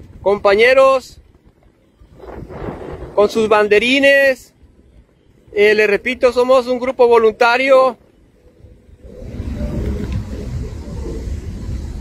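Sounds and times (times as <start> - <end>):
low road rumble: 0.0 - 12.0
wind rushing over microphone: 0.0 - 12.0.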